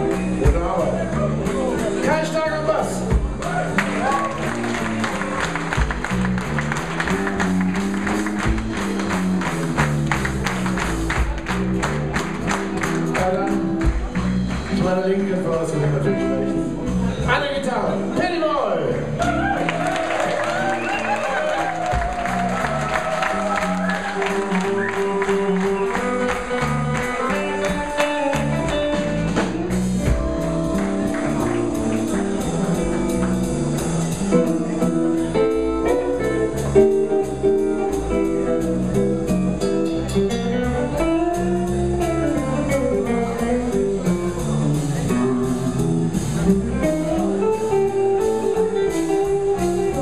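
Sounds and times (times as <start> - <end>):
electric bass walking: 0.0 - 19.8, 21.6 - 50.0
guitar: 0.0 - 50.0
steady drum beat: 0.0 - 50.0.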